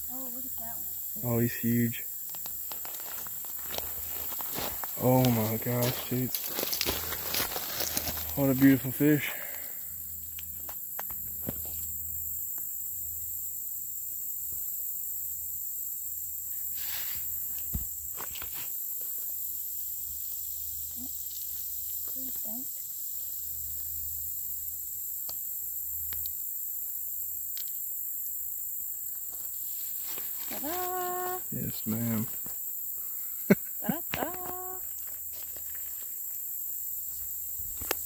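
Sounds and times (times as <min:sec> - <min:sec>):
high-pitched hiss: 0:00.0 - 0:38.0
gravel stones rattling: 0:02.2 - 0:09.6.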